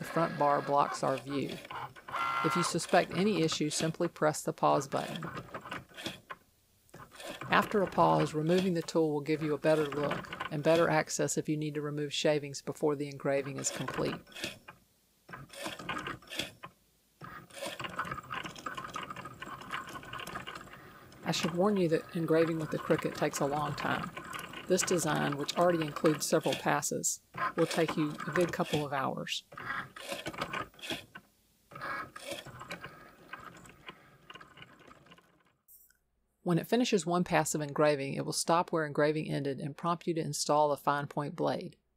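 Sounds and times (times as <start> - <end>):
machine carriage motors: 0.0 - 4.0, 4.8 - 6.4, 7.0 - 11.0, 13.4 - 35.4
engraving tip scratching metal: 0.0 - 6.4, 7.0 - 11.1, 13.3 - 29.0
cutting machine motors running: 15.3 - 28.9.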